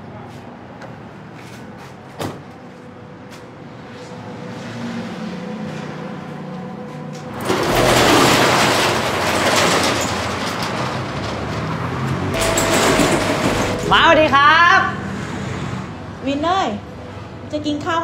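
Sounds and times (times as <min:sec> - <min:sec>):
metal roller shutter rattling: 0:07.3 - 0:14.4.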